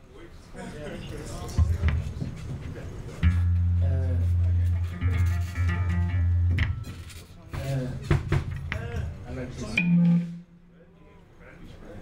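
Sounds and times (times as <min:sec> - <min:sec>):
electric bass guitar low notes: 0:03.2 - 0:06.9.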